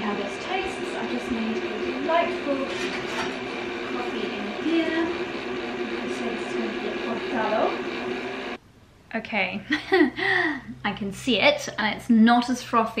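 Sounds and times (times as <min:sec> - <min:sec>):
milk frother motor whirring: 0:00.0 - 0:08.6.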